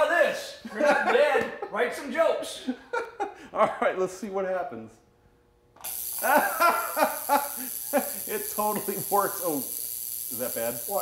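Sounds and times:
people laughing: 0:00.6 - 0:01.8, 0:02.6 - 0:03.9, 0:06.2 - 0:09.1
electrical hiss and buzz: 0:05.8 - 0:11.0.

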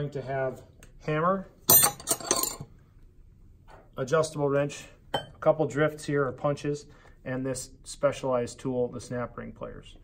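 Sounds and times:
metal tools clinking in a drawer: 0:01.7 - 0:02.7.

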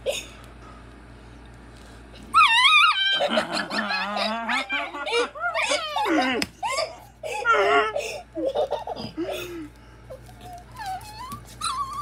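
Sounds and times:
puppy squealing cry: 0:02.3 - 0:08.0, 0:10.4 - 0:12.0
puppy growling: 0:02.4 - 0:06.4.

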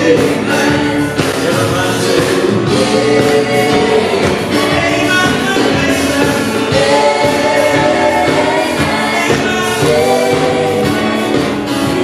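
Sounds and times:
guitar: 0:00.0 - 0:12.0
keyboard: 0:00.0 - 0:12.0
singers in harmony: 0:00.0 - 0:12.0.

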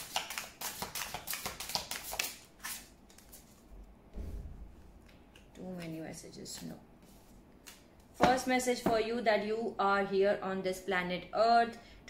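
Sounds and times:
cards being shuffled: 0:00.0 - 0:03.6.

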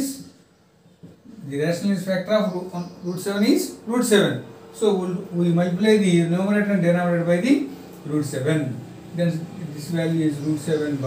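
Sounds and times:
man speaking: 0:00.0 - 0:00.3, 0:01.3 - 0:11.0.

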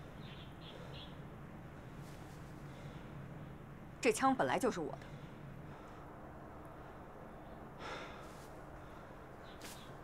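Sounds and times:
person breathing softly: 0:00.0 - 0:03.4, 0:05.0 - 0:09.4.

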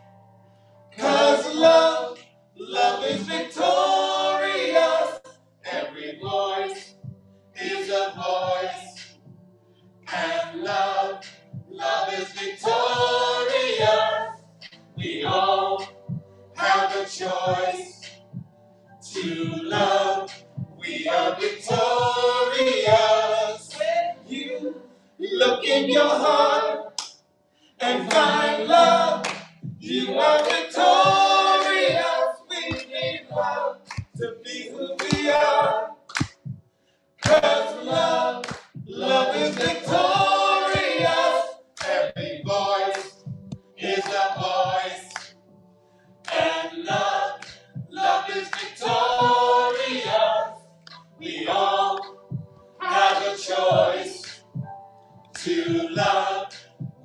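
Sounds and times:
women singing a cappella: 0:01.0 - 0:09.2, 0:10.1 - 0:14.4, 0:15.0 - 0:18.2, 0:19.0 - 0:27.0, 0:27.8 - 0:36.1, 0:37.2 - 0:45.3, 0:46.2 - 0:54.4, 0:55.4 - 0:57.0.

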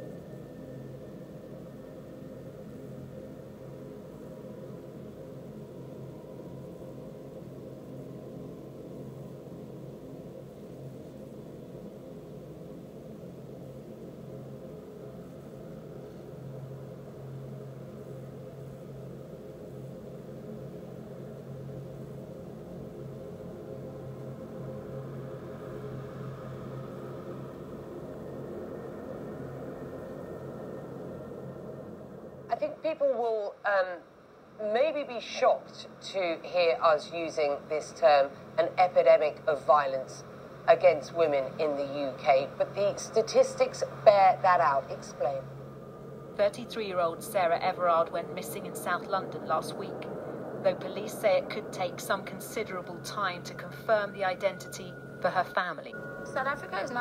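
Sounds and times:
low rumbling drone: 0:00.0 - 0:57.0.

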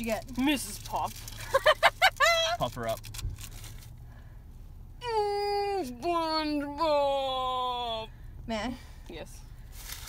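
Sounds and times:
low steady hum: 0:00.0 - 0:10.0
plastic wrapper rustling and clicking: 0:02.1 - 0:03.9.

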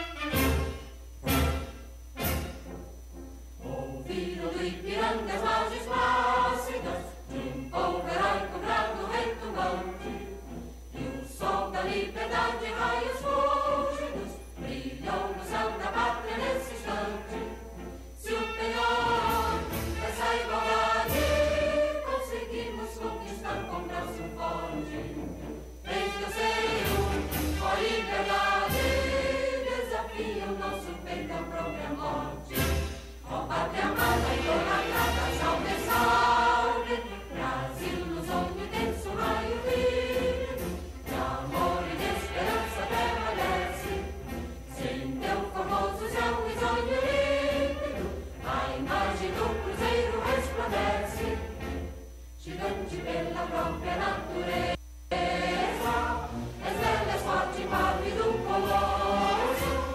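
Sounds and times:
choir singing over loudspeakers: 0:03.5 - 0:59.9.

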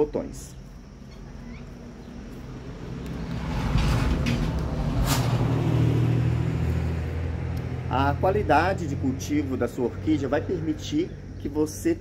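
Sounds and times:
vehicle engine running: 0:01.7 - 0:10.7.

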